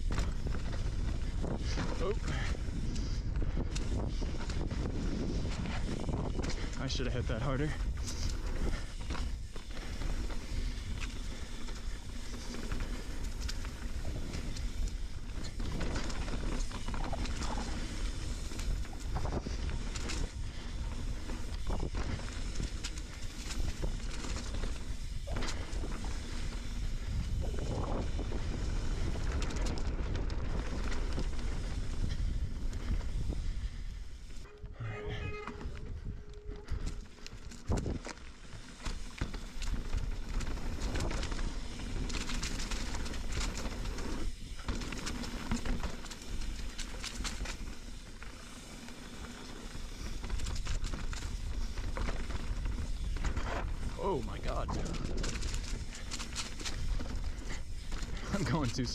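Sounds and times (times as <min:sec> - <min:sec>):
bike knocking and rattling: 0:00.0 - 0:58.9
bike tyres rumbling over dirt: 0:00.0 - 0:58.9
wind on microphone: 0:26.7 - 0:33.8.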